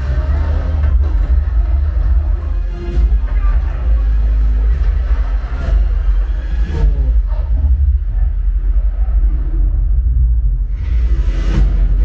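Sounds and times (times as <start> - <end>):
film soundtrack with deep bass: 0.0 - 12.0.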